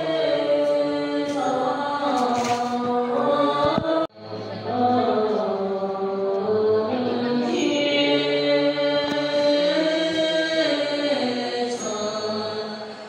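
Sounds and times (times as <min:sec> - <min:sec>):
voices chanting in held tones: 0:00.0 - 0:13.0.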